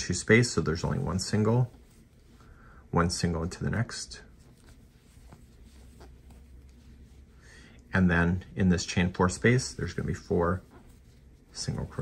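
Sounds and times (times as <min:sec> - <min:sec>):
yarn rustling on crochet hook: 0:00.0 - 0:12.0.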